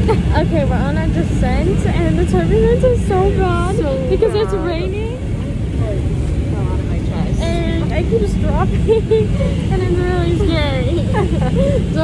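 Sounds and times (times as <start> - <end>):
faint voices: 0.0 - 12.0
steady low rumble: 0.0 - 12.0.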